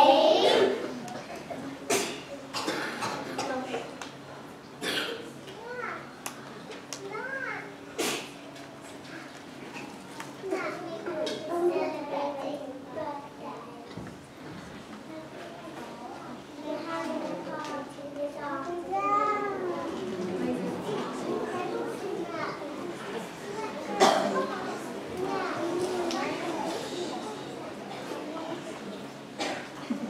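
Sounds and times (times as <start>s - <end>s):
children chattering: 0.0s - 30.0s.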